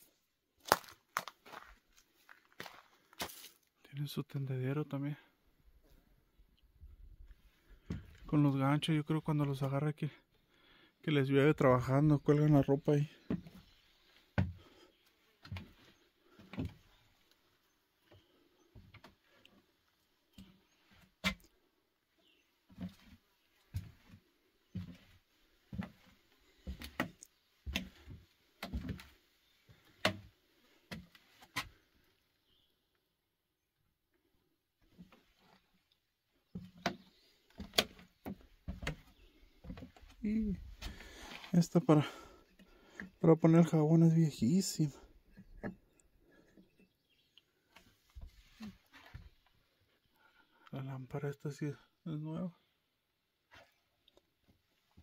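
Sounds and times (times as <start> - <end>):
footsteps on wooden boards: 13.2 - 17.3, 22.7 - 31.8, 36.5 - 43.1.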